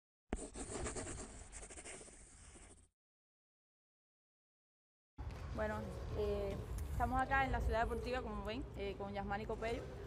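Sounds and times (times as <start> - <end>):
pen scratching on paper: 0.3 - 2.9.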